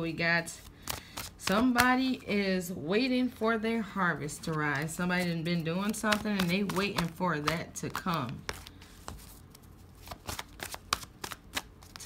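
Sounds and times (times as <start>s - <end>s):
cards being shuffled: 0.5s - 2.1s, 4.3s - 12.0s.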